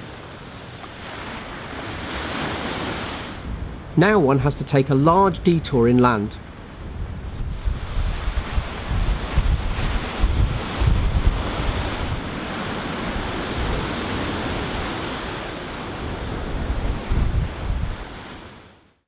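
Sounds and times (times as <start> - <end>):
wind buffeting microphone: 0.0 - 4.0, 6.4 - 18.5
surf breaking on beach: 0.0 - 18.8.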